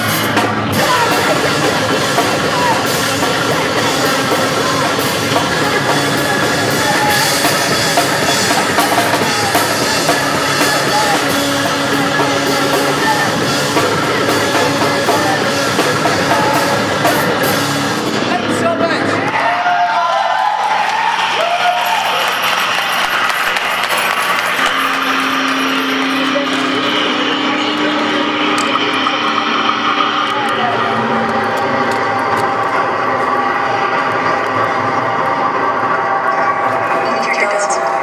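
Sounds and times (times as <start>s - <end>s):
distorted electric bass drone: 0.0s - 19.3s, 21.2s - 38.0s.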